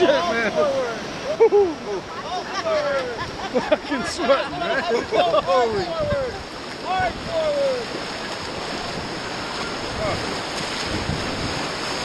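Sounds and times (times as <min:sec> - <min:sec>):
whitewater rapids rushing: 0:00.0 - 0:12.0.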